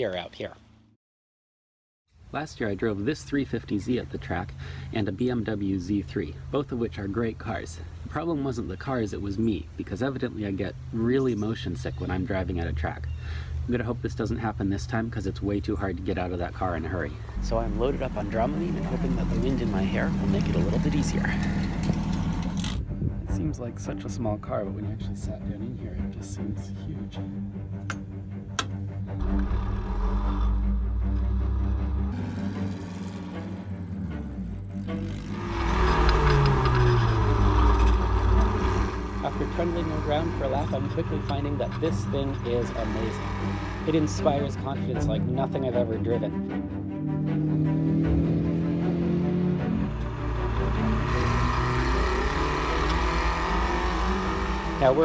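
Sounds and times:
race car engine rumble: 0:11.7 - 0:55.0
background music: 0:15.5 - 0:55.0
wind noise: 0:21.6 - 0:24.0.

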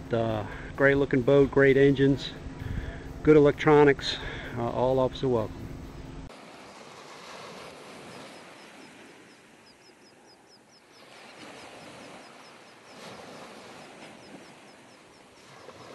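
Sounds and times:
small bird chirping: 0:08.1 - 0:13.0, 0:14.1 - 0:15.7.

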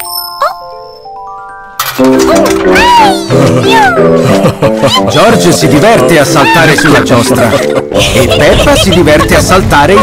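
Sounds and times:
high chime: 0:00.0 - 0:01.8
bouncy ride music: 0:00.0 - 0:04.7
coin dropping click: 0:01.8 - 0:02.6.

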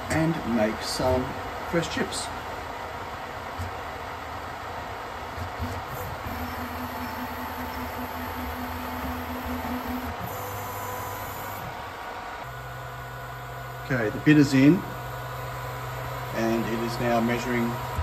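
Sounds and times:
steady low hum: 0:00.0 - 0:18.0
motor whine: 0:05.6 - 0:18.0.

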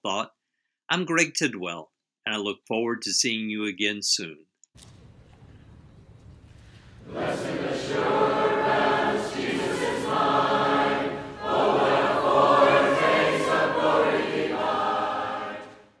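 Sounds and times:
choir singing: 0:07.0 - 0:16.0.

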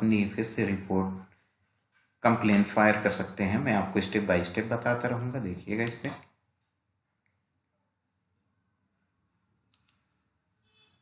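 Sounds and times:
computer mouse clicks: 0:09.7 - 0:10.2.

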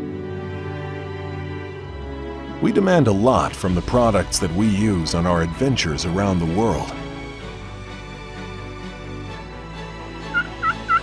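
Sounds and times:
turkey yelping: 0:10.3 - 0:11.0.

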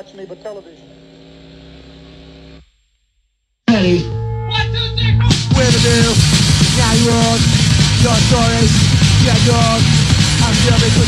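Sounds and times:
electrical hum: 0:03.7 - 0:11.0.

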